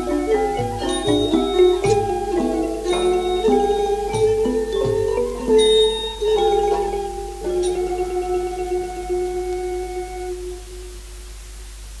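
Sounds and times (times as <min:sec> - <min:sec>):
percussion ensemble note ringing: 0:00.0 - 0:11.2
low hum and hiss: 0:00.0 - 0:12.0.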